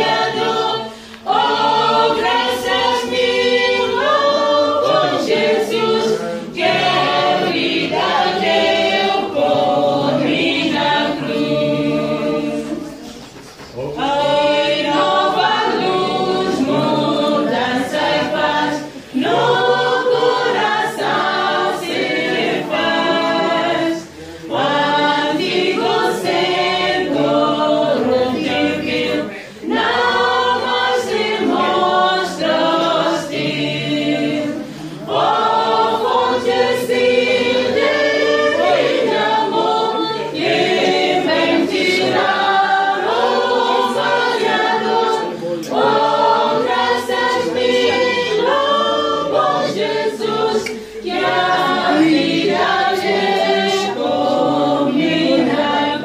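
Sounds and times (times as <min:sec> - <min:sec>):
group singing a hymn: 0:00.0 - 0:56.0.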